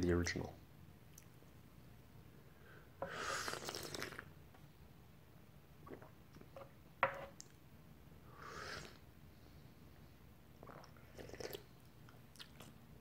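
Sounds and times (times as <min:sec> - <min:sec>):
person slurping tea: 0:03.0 - 0:04.3, 0:08.4 - 0:09.0, 0:10.6 - 0:11.6.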